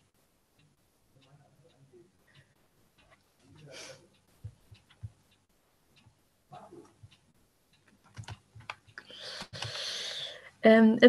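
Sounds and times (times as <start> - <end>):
faint clicks: 0.0 - 10.5
soft breathy hiss: 1.2 - 4.4, 9.0 - 10.7.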